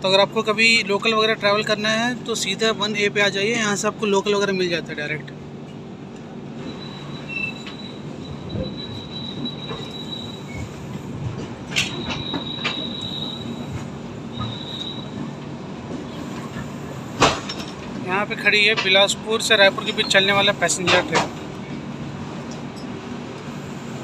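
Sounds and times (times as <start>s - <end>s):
train wheels rumbling on track: 0.0s - 24.0s
high wheel squeal: 6.6s - 11.0s, 11.8s - 15.4s
wheels clacking over rail joints: 11.2s - 19.2s, 20.8s - 21.8s.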